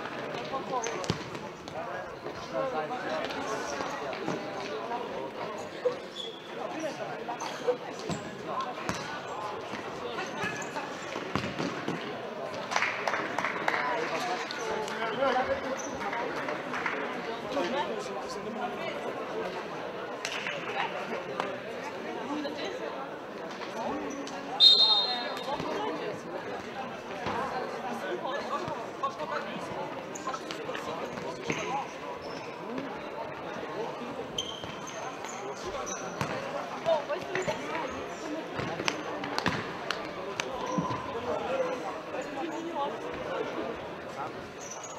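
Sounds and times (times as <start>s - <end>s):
people talking and calling out: 0.0s - 44.9s
ball bouncing on hall floor: 0.7s - 1.8s, 11.2s - 12.6s, 38.6s - 40.0s.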